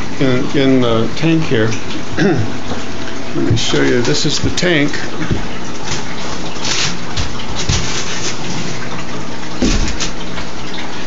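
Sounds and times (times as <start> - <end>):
water rushing into a tank: 0.0 - 11.0.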